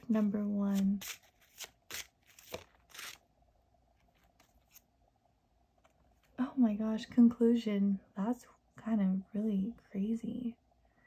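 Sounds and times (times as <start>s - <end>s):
cards shuffling: 0.0s - 3.2s, 4.0s - 4.9s.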